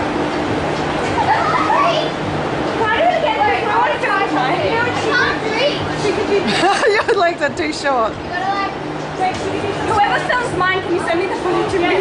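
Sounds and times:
steady low hum: 0.0s - 12.0s
girls talking and calling out: 1.0s - 12.0s.

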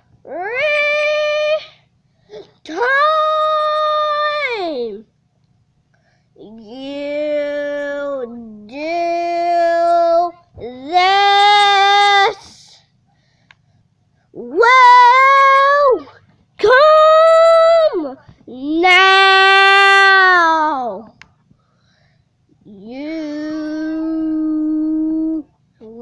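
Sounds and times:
child singing long notes: 22.7s - 26.0s.

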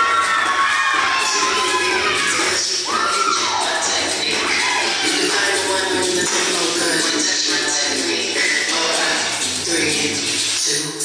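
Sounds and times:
people whooping and cheering: 0.0s - 5.8s
dance track: 0.0s - 11.0s.

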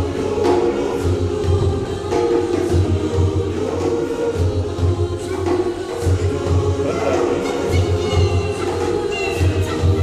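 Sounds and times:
youth choir singing: 0.0s - 10.0s.

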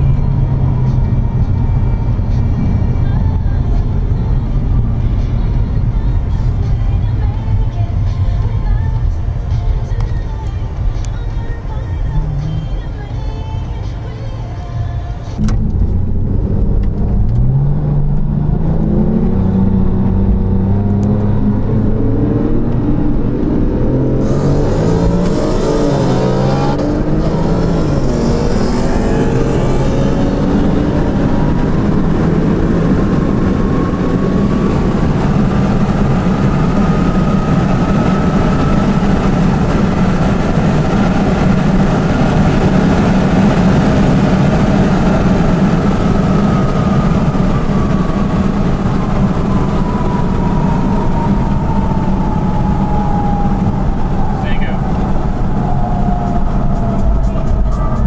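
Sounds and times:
car engine accelerating: 0.0s - 58.0s
road noise inside cabin: 0.0s - 58.0s
rising whine: 15.4s - 58.0s.

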